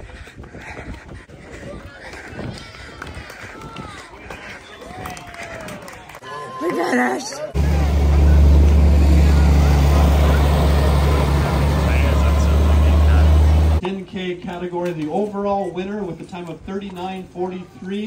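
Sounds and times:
tractor engine droning: 7.6s - 13.8s
man speaking over a microphone: 8.3s - 18.0s.

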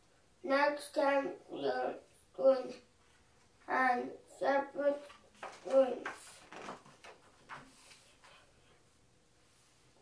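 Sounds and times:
young child reading aloud: 0.4s - 3.0s, 3.6s - 6.5s.

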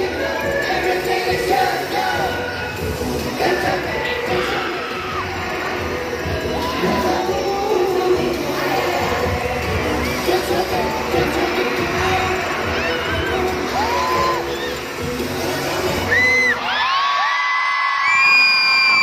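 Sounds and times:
crowd screaming: 0.0s - 19.0s
pop music over sound system: 0.0s - 19.0s.

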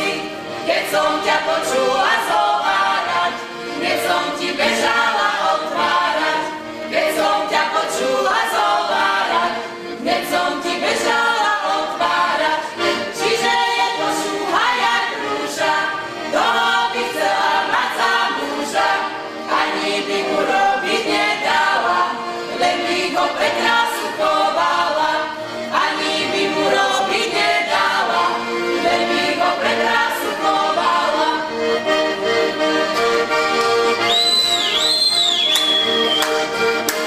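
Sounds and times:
women singing unaccompanied: 0.0s - 31.5s.

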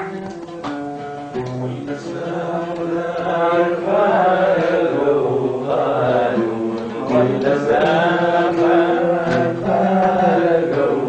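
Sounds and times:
oud plucked: 0.0s - 11.0s
man singing long held notes: 1.6s - 11.0s.

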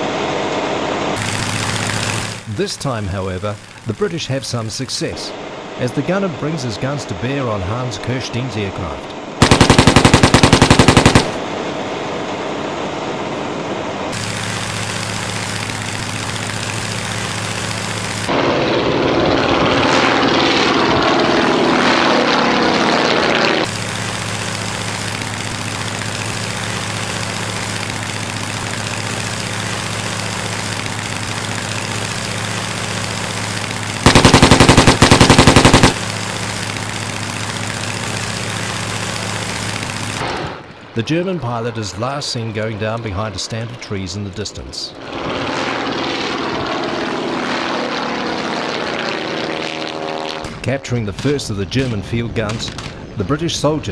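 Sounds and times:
propeller aircraft engine: 0.0s - 41.0s, 43.7s - 50.8s
machine-gun fire: 1.2s - 2.5s, 9.4s - 11.5s, 23.7s - 40.2s.

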